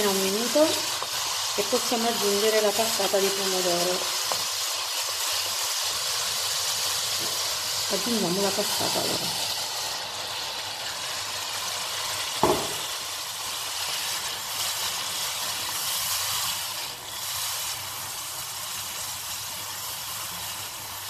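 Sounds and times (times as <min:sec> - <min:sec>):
seafood sizzling in hot oil: 0:00.0 - 0:21.0
single knock: 0:12.4 - 0:12.8.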